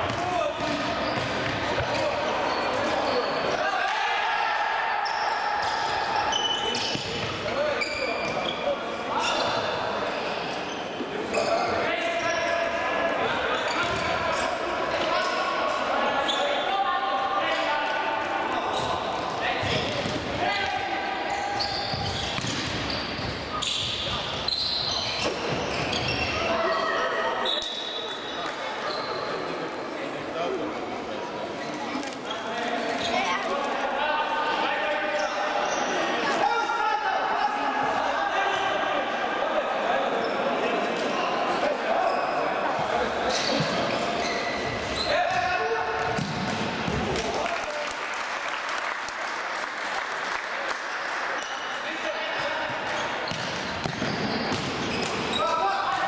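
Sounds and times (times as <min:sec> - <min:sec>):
ball kicks and bounces: 0:46.0 - 0:47.0.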